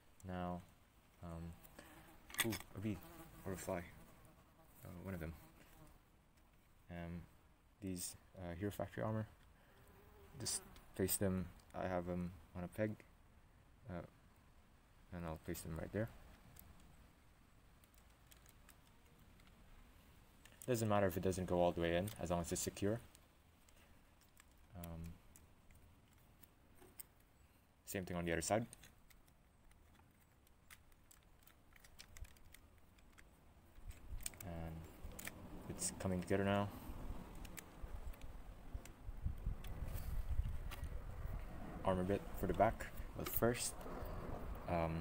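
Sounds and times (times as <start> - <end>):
plastic parts clicking: 17.8 - 19.6, 20.4 - 20.7, 22.0 - 27.3, 28.6 - 36.3, 37.2 - 39.0.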